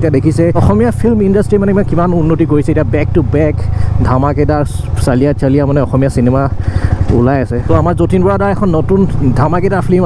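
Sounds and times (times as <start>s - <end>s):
man talking: 0.0s - 10.0s
motorcycle engine running: 0.0s - 10.0s.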